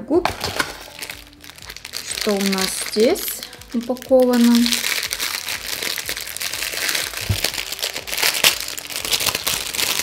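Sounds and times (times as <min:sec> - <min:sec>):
plastic packaging crinkling: 0:00.2 - 0:10.0.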